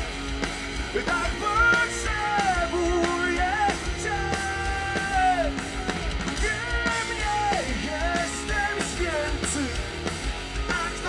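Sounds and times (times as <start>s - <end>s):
electric guitar: 0.0s - 11.0s
keyboard: 0.0s - 11.0s
steady drum beat: 0.0s - 11.0s.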